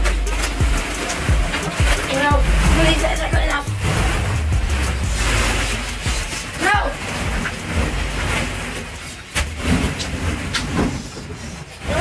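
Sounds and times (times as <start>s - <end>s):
plastic balls rustling and clattering: 0.0s - 12.0s.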